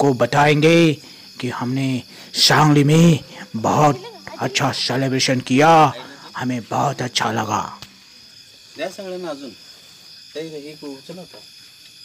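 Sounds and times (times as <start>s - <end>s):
people talking: 0.0s - 7.8s, 8.8s - 9.6s, 10.4s - 11.4s
crickets chirping: 0.0s - 12.0s.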